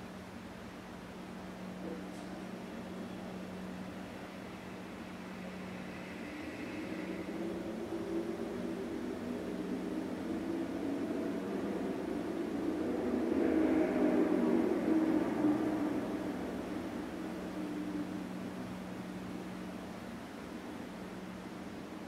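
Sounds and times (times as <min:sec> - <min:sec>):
low rumbling noise: 0:00.0 - 0:22.0
steady low hum: 0:00.0 - 0:22.0.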